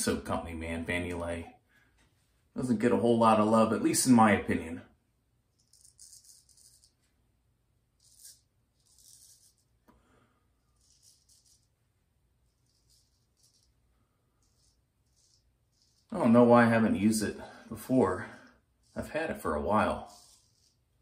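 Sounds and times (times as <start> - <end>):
straight razor scraping stubble: 5.6 - 7.1, 8.0 - 9.7, 12.5 - 16.5, 18.8 - 21.0.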